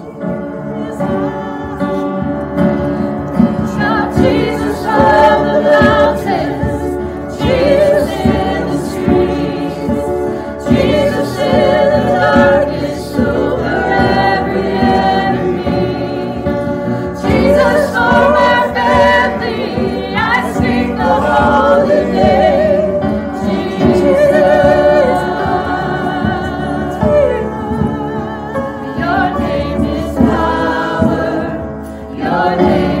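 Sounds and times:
women singing worship song: 0:00.0 - 0:33.0.

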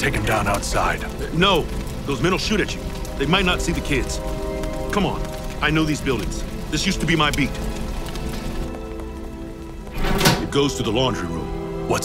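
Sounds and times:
background music with held notes: 0:00.0 - 0:12.0
fire crackling: 0:00.0 - 0:12.0.

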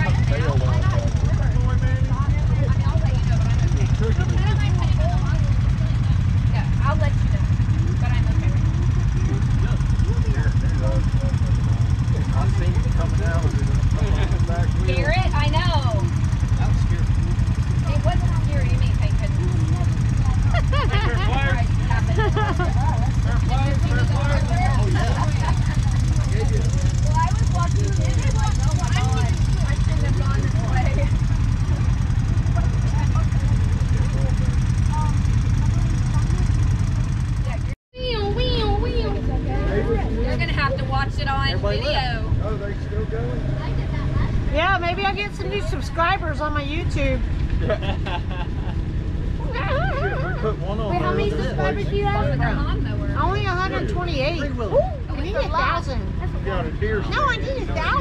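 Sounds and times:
faint voices talking: 0:00.0 - 0:58.0
vehicle engine idling: 0:00.0 - 0:58.0.

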